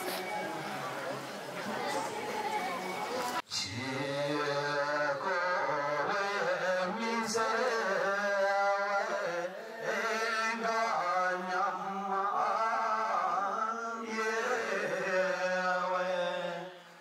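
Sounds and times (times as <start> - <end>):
group singing slow song: 0.0 - 17.0.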